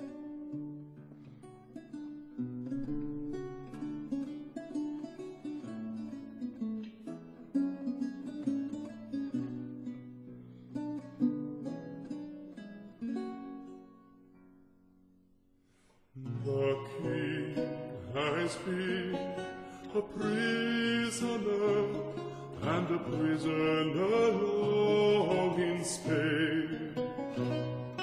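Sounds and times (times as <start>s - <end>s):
lute playing plucked notes: 0.0s - 14.9s, 16.2s - 28.0s.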